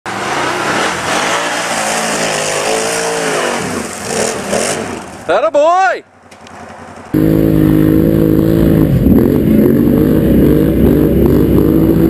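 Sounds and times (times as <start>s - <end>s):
atv engine revving: 0.2s - 5.3s, 6.4s - 12.0s.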